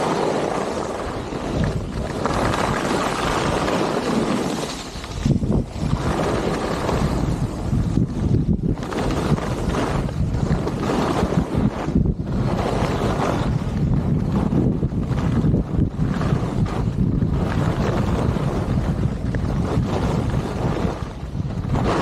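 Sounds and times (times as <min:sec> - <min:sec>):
skis scraping over snow: 0:00.0 - 0:22.0
wind rushing over microphone: 0:00.0 - 0:22.0.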